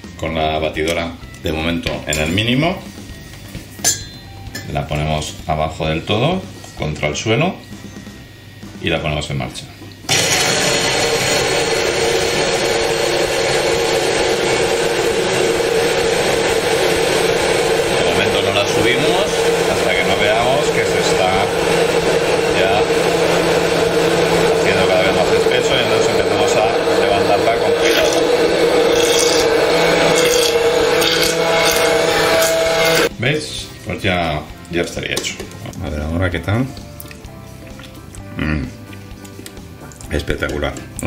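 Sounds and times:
immersion blender motor whine: 10.1s - 33.1s
sauce churning: 10.1s - 33.1s, 36.8s - 41.0s.

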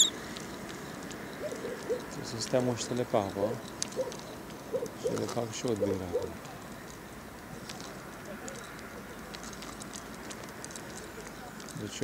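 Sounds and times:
bird chirp: 0.0s - 2.3s.

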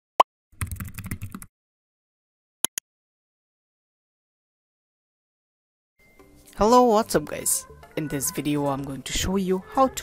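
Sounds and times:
keyboard typing: 0.6s - 1.5s.

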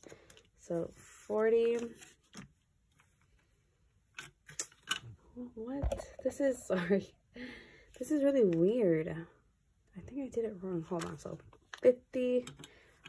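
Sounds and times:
paper and banknotes rustling: 0.0s - 3.2s
woman speaking: 5.4s - 7.2s, 8.0s - 12.5s.

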